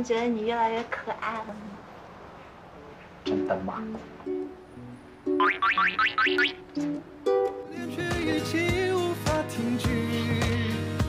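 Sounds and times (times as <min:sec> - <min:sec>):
playful background music: 0:05.3 - 0:11.0.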